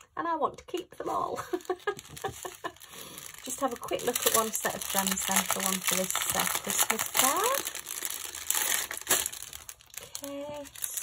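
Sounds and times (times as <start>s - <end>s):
plastic bag crinkling: 1.3s - 11.0s.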